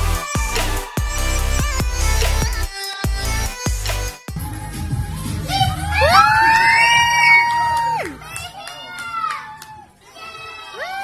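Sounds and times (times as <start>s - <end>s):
low pulsing beat: 0.0s - 6.6s.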